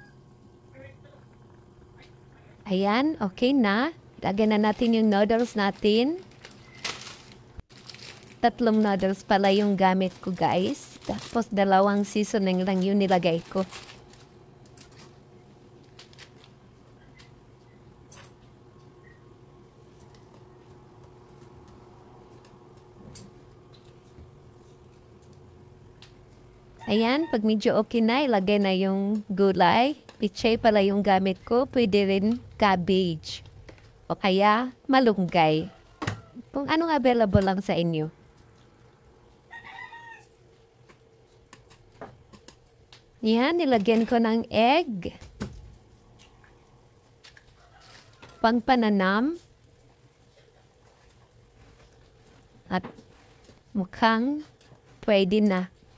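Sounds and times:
steady low hum: 0.0s - 39.6s.

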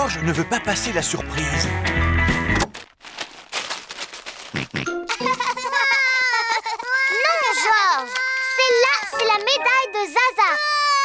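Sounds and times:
wrapping paper tearing: 2.6s - 4.9s, 7.5s - 8.8s
cartoon party music: 4.5s - 11.0s
child calling in sing-song tones: 6.3s - 11.0s.

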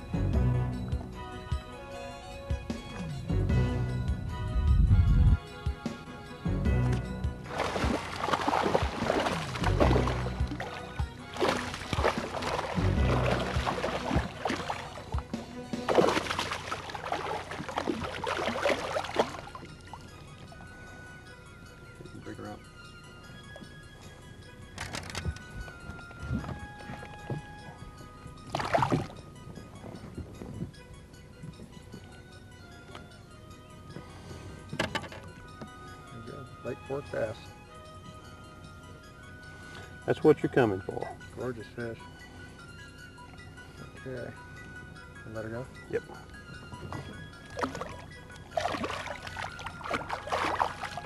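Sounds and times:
background music: 0.0s - 51.0s
fish splashing in water: 7.5s - 19.8s, 28.5s - 29.2s, 47.5s - 51.0s.

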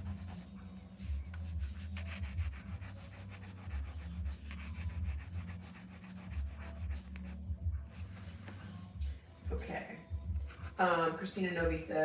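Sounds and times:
pencil scratching on paper: 0.0s - 7.4s, 10.4s - 11.4s.

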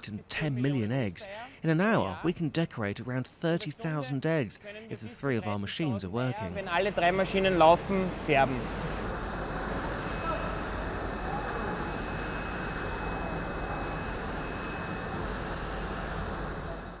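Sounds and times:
factory machinery noise: 6.5s - 17.0s
faint high whine: 6.5s - 17.0s.

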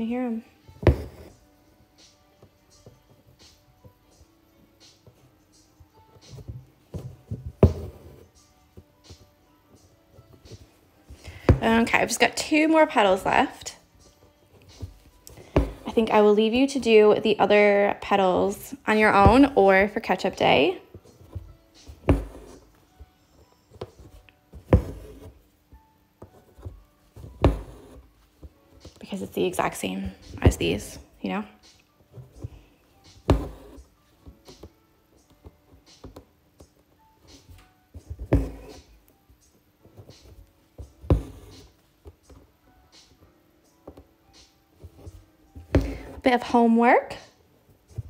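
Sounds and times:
quiet music with a light beat: 0.0s - 48.0s.

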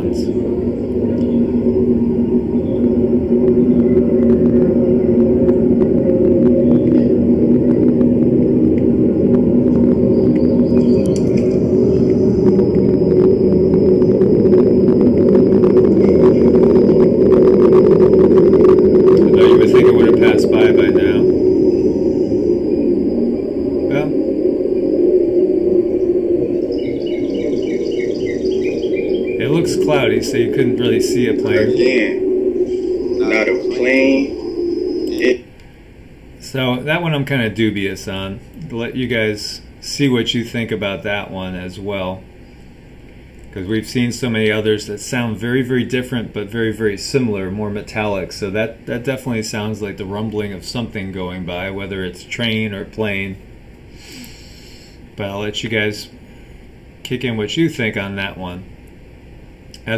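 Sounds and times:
thin high steady tone: 0.0s - 42.8s
low rumble with humming tones: 0.0s - 59.9s.

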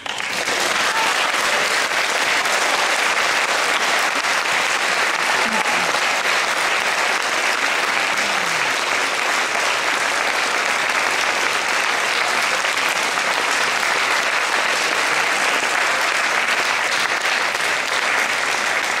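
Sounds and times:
audience applauding: 0.0s - 19.0s.

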